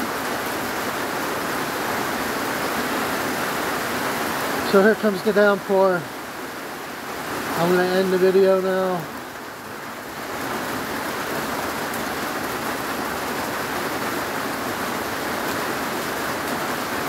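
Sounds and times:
heavy rain on metal roof: 0.0s - 17.0s.

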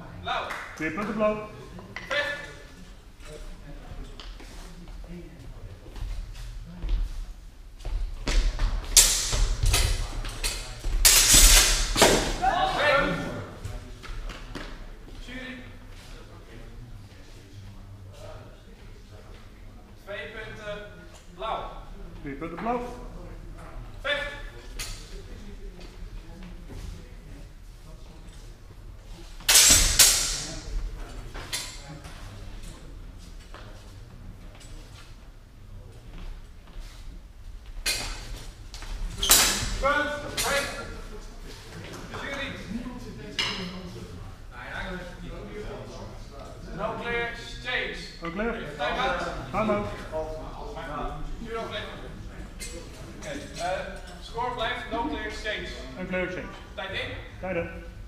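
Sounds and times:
swords striking together: 9.0s - 12.3s, 29.5s - 30.6s.

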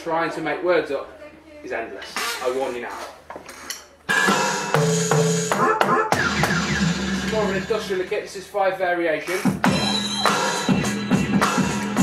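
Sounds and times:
electronic drum beat: 4.1s - 8.1s, 9.3s - 12.0s
pitched electronic tones: 5.6s - 7.8s.

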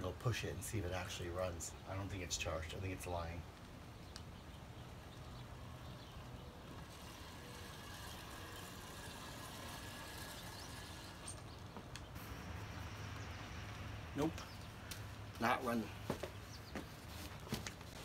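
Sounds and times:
man speaking: 15.4s - 16.0s.

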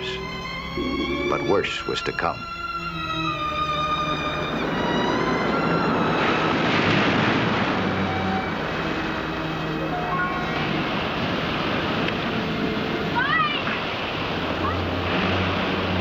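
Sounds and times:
orchestral music: 0.0s - 16.0s
surf breaking over rocks: 4.3s - 16.0s.

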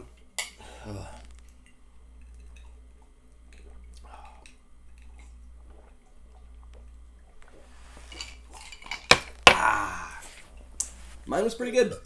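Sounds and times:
liquid and glass sounds: 0.4s - 10.8s
rustling noise: 10.4s - 11.4s.

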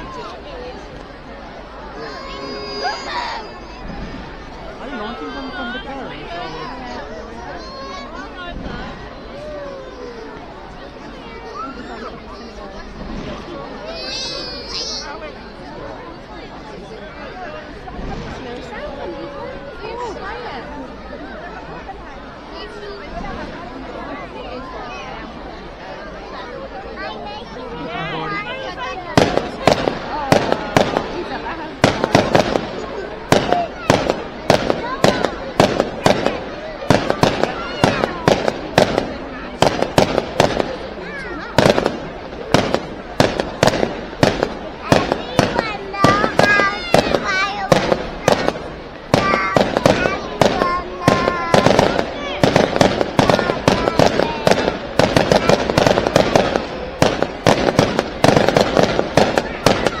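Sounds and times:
fireworks bangs and crackles: 0.0s - 5.0s, 5.7s - 20.7s, 28.3s - 60.0s
crowd voices: 0.0s - 60.0s.

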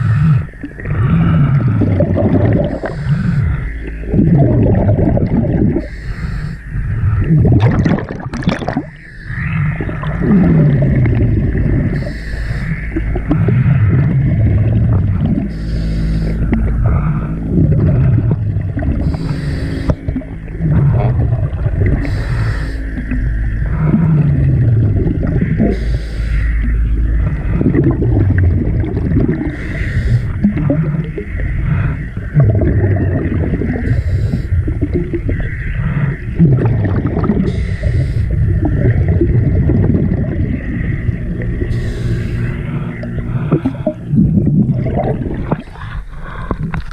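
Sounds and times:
exhaust bubbles gurgling: 0.0s - 46.9s
underwater rumbling water noise: 0.0s - 46.9s
regulator breathing hiss: 2.7s - 3.8s, 5.8s - 7.2s, 11.9s - 13.9s, 15.4s - 17.4s, 19.0s - 20.1s, 22.0s - 23.1s, 25.5s - 27.5s, 29.4s - 30.4s, 33.8s - 34.6s, 37.5s - 38.4s, 41.6s - 43.9s.

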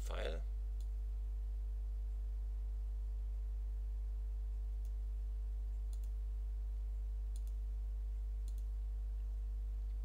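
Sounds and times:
electrical mains hum: 0.0s - 10.0s
faint click: 7.3s - 7.6s, 8.4s - 8.7s.

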